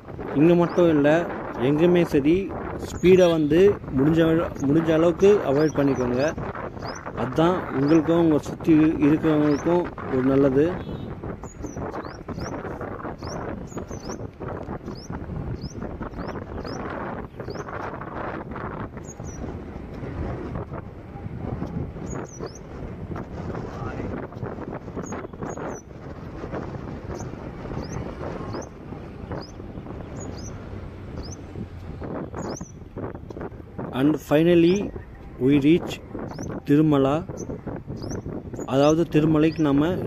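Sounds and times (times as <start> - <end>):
road noise: 0.0 - 40.0
wind buffeting microphone: 0.0 - 40.0.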